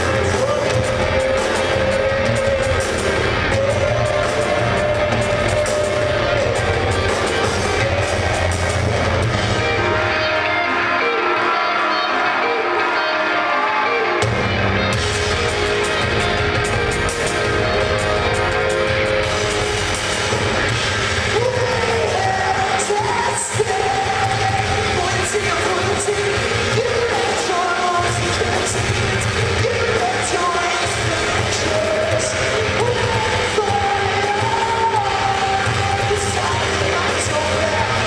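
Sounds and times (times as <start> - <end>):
person singing: 0.0 - 16.4, 21.2 - 38.0
live rock band playing: 0.0 - 38.0.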